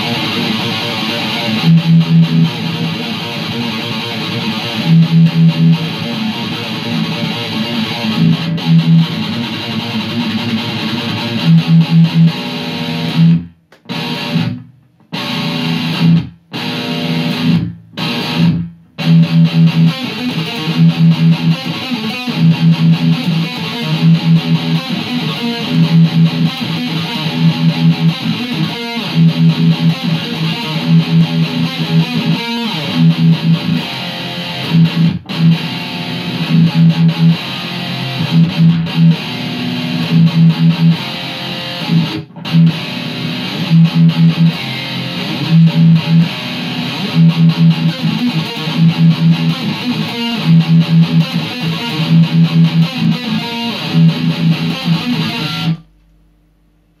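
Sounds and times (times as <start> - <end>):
distorted electric guitar riff: 0.0 - 56.1.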